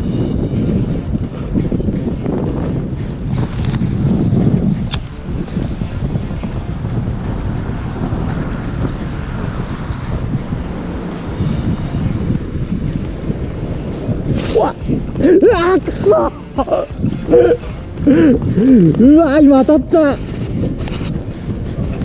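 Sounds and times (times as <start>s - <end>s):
wind rumbling on microphone: 0.0s - 22.0s
sharp click: 4.8s - 5.2s.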